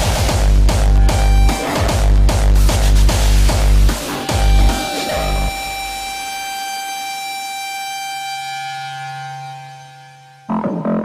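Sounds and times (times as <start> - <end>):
held electronic synth tones: 0.8 - 2.3, 3.7 - 11.0
low held bass note: 3.6 - 6.5.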